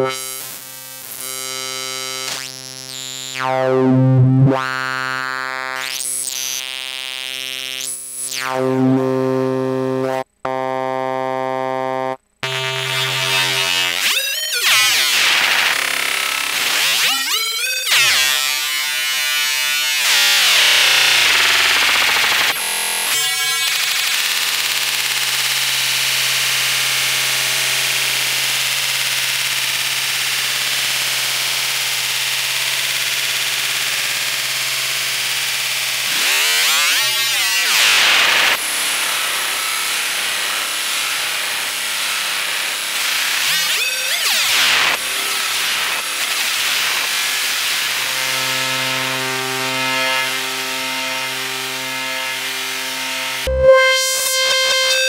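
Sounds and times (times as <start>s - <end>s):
distorted screaming synthesizer tone: 7.7s - 18.9s, 20.0s - 23.7s, 36.0s - 55.0s.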